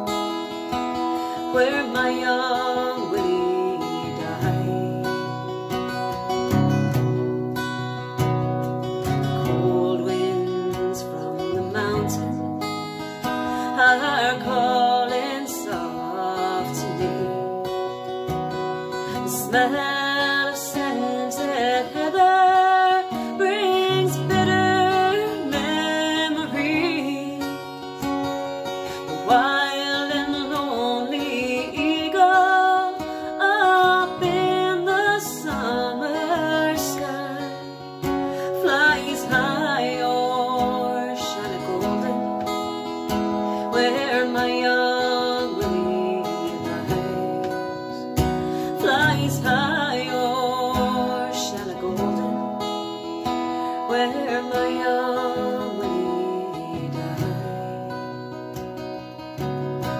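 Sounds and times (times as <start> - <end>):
acoustic guitar strumming: 0.0 - 59.9
woman singing a ballad: 0.0 - 59.9.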